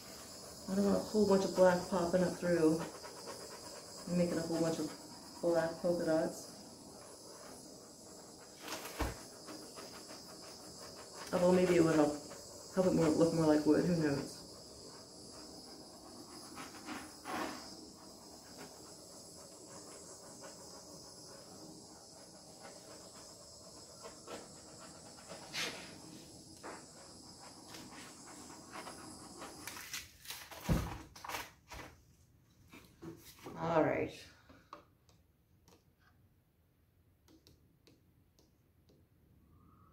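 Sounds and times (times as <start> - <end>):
handheld torch hissing: 0.0 - 30.7.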